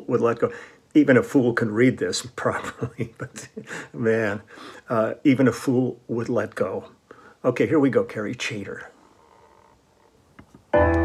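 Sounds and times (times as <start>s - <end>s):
recorded song with piano and bass: 10.7s - 11.0s.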